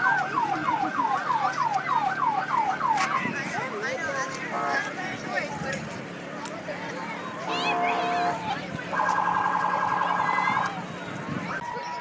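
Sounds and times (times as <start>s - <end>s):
electronic siren warbling: 8.9s - 10.6s.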